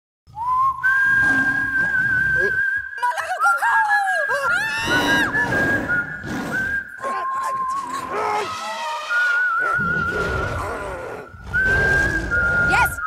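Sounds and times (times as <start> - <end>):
high whistling notes: 0.3 - 13.0
sliding swooping whistle calls: 0.4 - 13.0.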